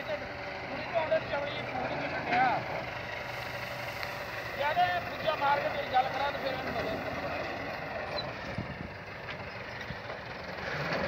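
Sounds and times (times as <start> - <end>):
tractor engine running: 0.0 - 11.0.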